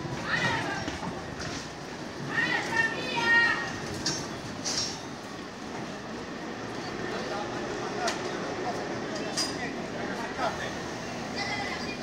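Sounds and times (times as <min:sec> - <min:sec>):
electric tram on rails: 0:00.0 - 0:12.0
chatter of people: 0:06.5 - 0:12.0.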